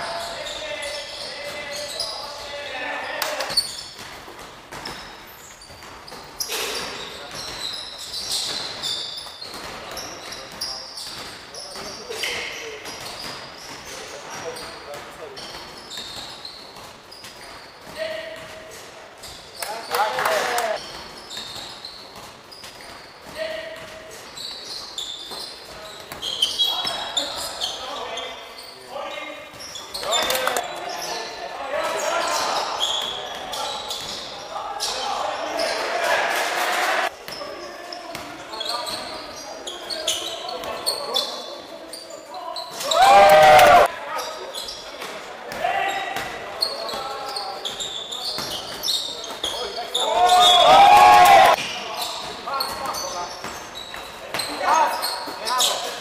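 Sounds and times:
sneakers squeaking on wooden court: 0.0 - 36.0, 37.0 - 56.0
loud shouts: 42.8 - 43.9, 50.0 - 51.6.

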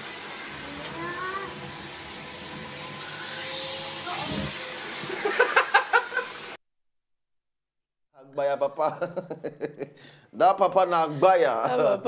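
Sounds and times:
vacuum cleaner running: 0.0 - 6.6.

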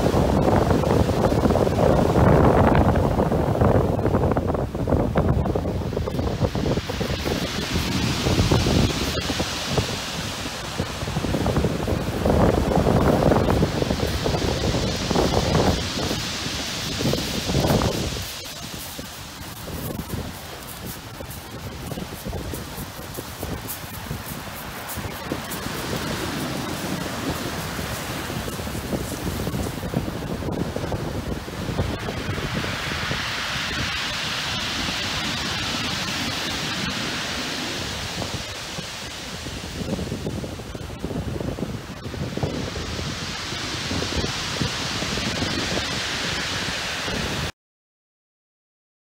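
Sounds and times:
surf crashing on shingle beach: 0.0 - 47.5
wind buffeting microphone: 0.0 - 47.5.

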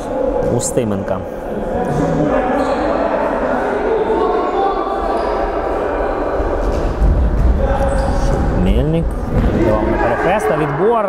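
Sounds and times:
players calling out: 9.3 - 11.0.

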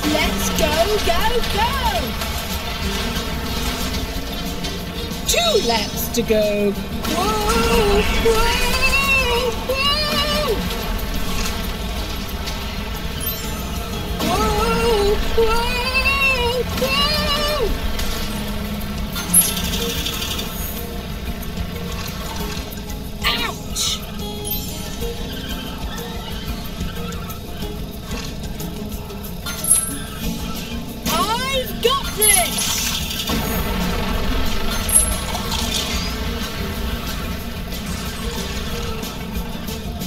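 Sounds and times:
game background music: 0.0 - 40.0
chime-like effects: 13.2 - 14.5, 19.1 - 21.0, 24.2 - 26.2, 29.4 - 30.6, 34.6 - 36.2.

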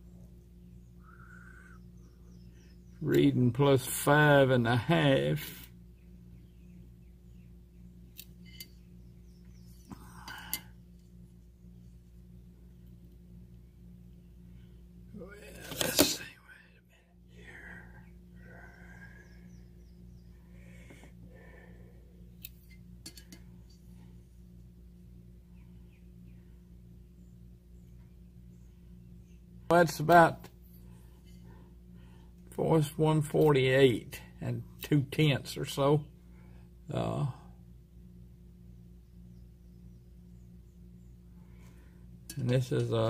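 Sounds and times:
low electrical hum: 0.0 - 43.0
faint metal clicks and scrapes: 8.1 - 8.8, 22.4 - 23.9.

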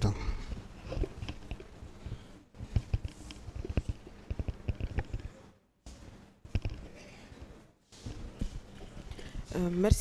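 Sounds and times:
microphone handling thumps and clicks: 2.6 - 5.4.

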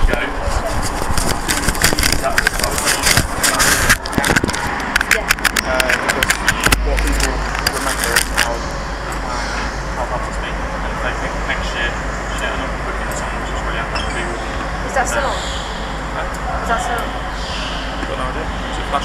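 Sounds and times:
faint voices: 0.0 - 19.0
low rumble: 0.0 - 19.0
camera microphone handling noise: 0.6 - 8.6.

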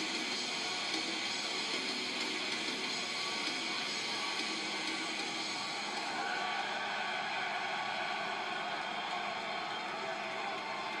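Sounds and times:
arena crowd roar through tv speaker: 0.0 - 11.0.

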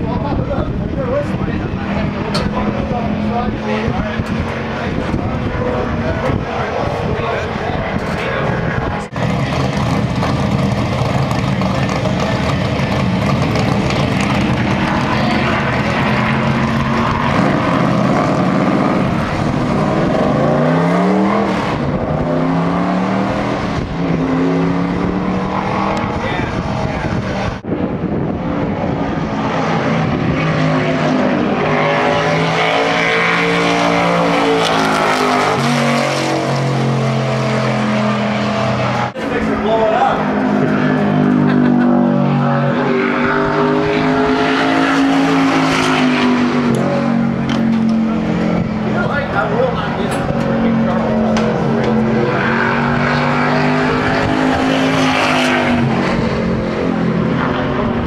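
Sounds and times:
race car engines revving: 0.0 - 58.0.

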